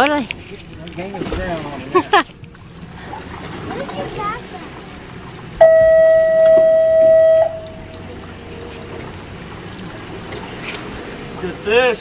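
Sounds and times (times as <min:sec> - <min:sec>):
water and boat noise: 0:00.0 - 0:12.0
loud steady tone: 0:05.6 - 0:08.4.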